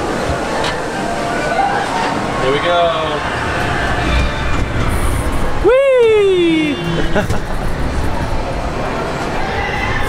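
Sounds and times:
faint drawn-out tones: 1.4s - 10.0s.

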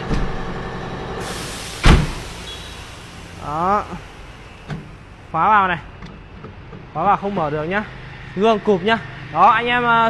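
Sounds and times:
tailgate slamming shut: 0.0s - 0.6s, 1.3s - 2.5s.

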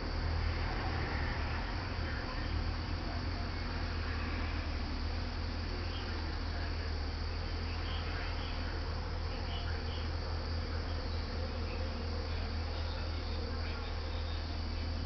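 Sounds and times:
steady low hum: 0.0s - 15.0s.

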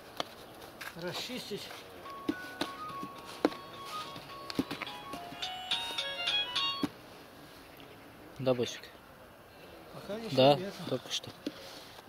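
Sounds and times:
electronic beeping melody: 2.0s - 6.9s.

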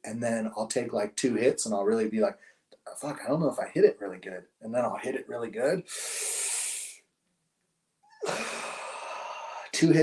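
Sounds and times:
long hissing exhale: 5.9s - 7.0s, 8.2s - 9.7s
man inhaling sharply: 5.9s - 7.0s.

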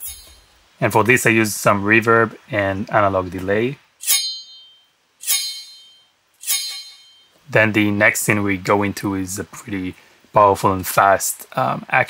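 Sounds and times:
high metallic sword ring: 0.0s - 0.5s, 4.0s - 7.4s.

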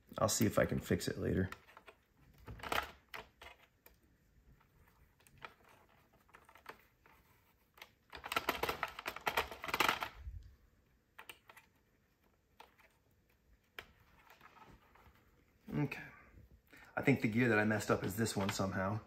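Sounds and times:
plastic knitting machine clicking: 1.4s - 3.9s, 7.7s - 10.5s.

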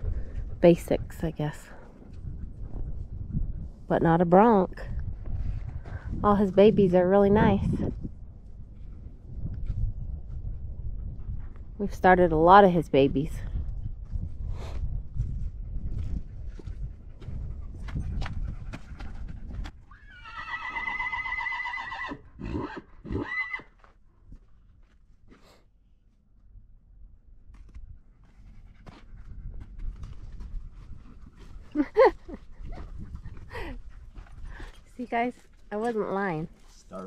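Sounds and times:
horse whinnying: 19.9s - 23.8s.

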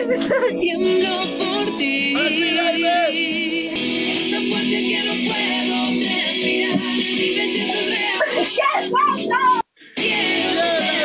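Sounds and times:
song with sung melody: 0.0s - 11.0s.

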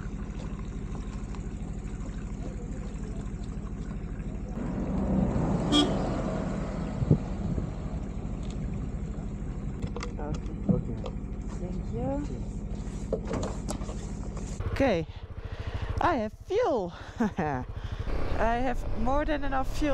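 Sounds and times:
engine idling: 0.0s - 19.9s
motor vehicle passing: 4.5s - 10.0s, 11.1s - 16.2s, 16.8s - 19.9s
short horn toot: 5.7s - 6.0s.

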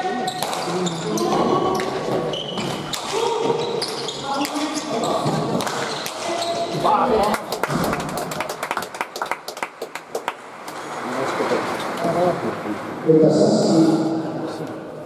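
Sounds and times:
scattered handclapping: 7.2s - 10.8s.

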